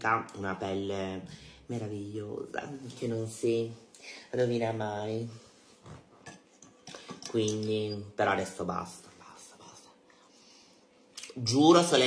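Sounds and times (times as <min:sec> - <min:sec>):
faint breathy hiss: 0:03.7 - 0:04.4, 0:09.0 - 0:11.2.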